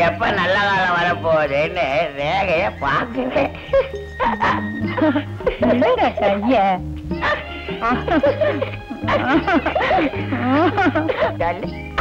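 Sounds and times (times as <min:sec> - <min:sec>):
instrumental backing with bass line: 0:00.0 - 0:12.0.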